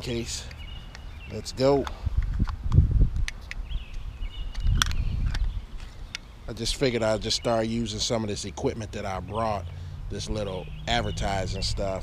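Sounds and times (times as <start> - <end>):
camera handling rumble: 1.8 - 6.3
sharp plastic clicks: 1.8 - 6.3.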